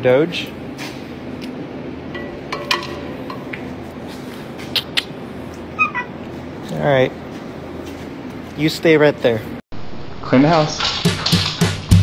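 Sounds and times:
dog whining: 5.7s - 6.2s.

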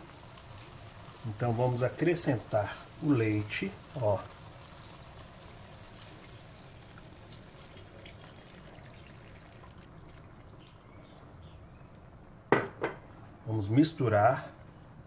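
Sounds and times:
milk pouring trickle: 0.0s - 11.2s.

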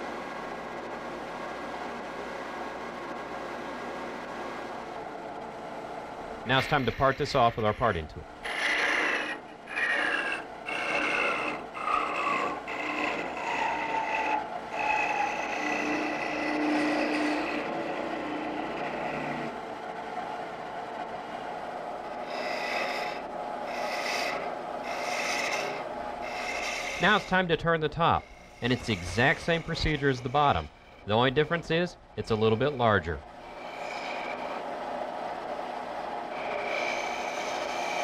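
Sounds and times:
lathe tool scraping spinning wood: 6.5s - 19.6s, 21.8s - 38.0s.

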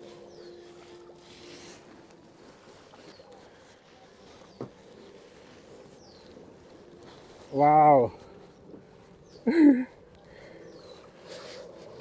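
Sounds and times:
bird chirps: 0.0s - 1.8s, 3.0s - 11.7s.

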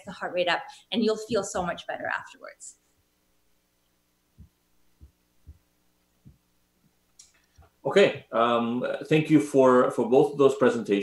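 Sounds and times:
faint steady hum: 0.0s - 11.0s
soft low thumps: 4.3s - 7.0s.

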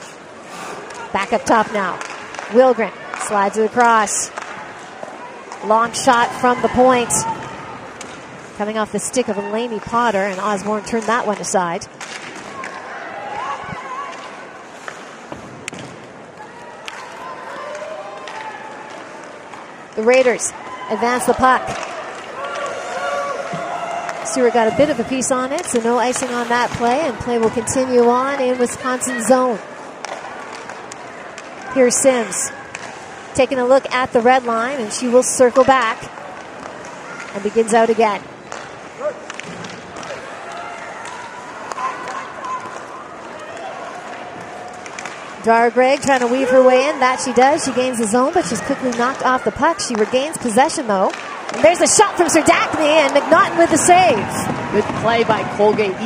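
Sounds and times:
skates on ice: 0.5s - 56.0s
hockey sticks and puck knocking: 9.8s - 12.8s, 14.1s - 16.2s, 23.4s - 27.8s, 30.0s - 31.8s, 32.7s - 46.6s, 47.5s - 56.0s
crowd murmuring: 46.3s - 56.0s.

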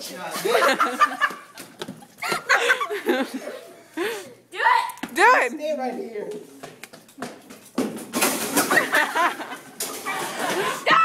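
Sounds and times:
young people laughing and whooping: 0.4s - 3.8s, 8.6s - 11.0s.

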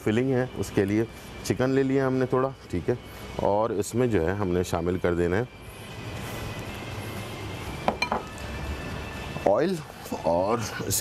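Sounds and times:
kitchenware clinking: 7.8s - 8.4s.

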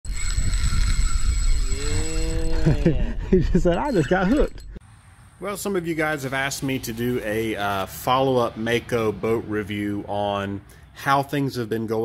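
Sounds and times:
fishing reel whirring: 0.1s - 2.9s
wind buffeting microphone: 0.1s - 4.8s.

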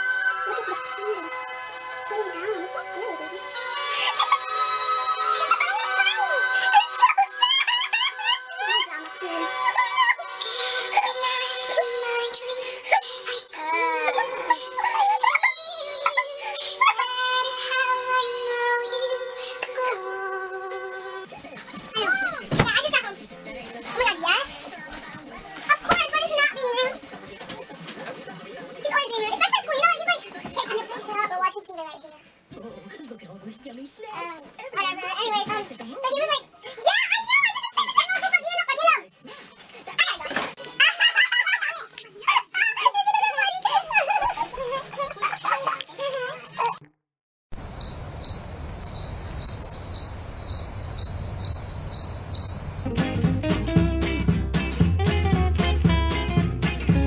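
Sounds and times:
high-pitched voices: 0.0s - 27.0s
crickets chirping: 47.6s - 52.9s.

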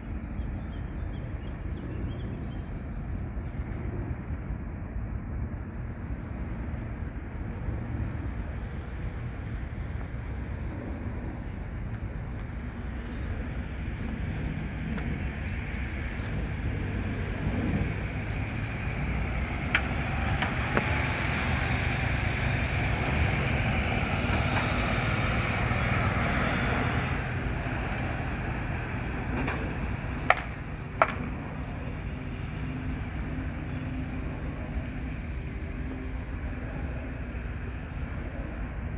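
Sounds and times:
low traffic rumble: 0.0s - 38.9s.

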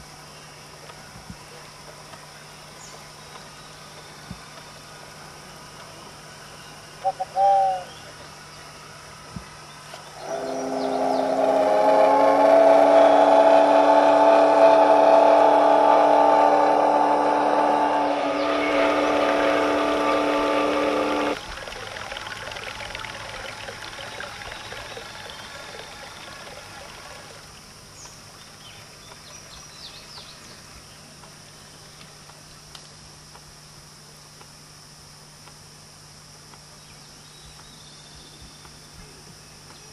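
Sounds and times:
steamboat whistle blast: 10.2s - 21.4s.

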